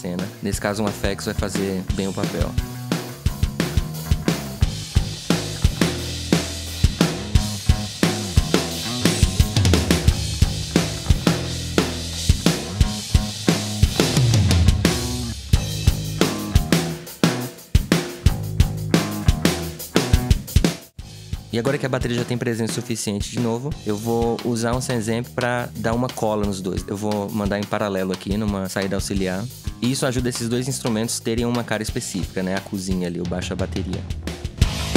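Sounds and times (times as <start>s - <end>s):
bass line: 0.0s - 22.4s, 29.0s - 34.9s
drum kit: 0.0s - 34.9s.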